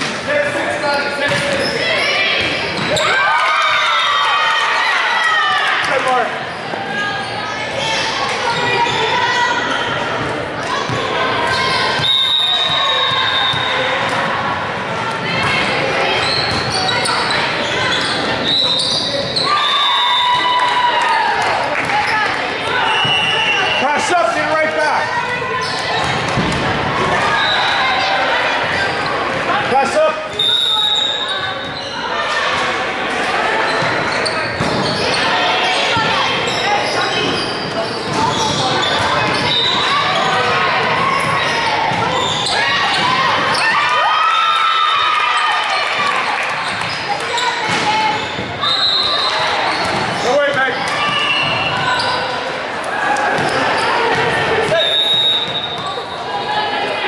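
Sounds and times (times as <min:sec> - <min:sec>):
spectators talking: 0:00.0 - 0:57.0.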